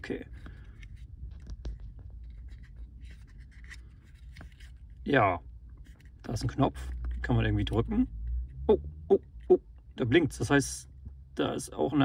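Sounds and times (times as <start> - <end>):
scratchy handling sounds: 0.0 - 8.6
low steady rumble: 0.0 - 12.0.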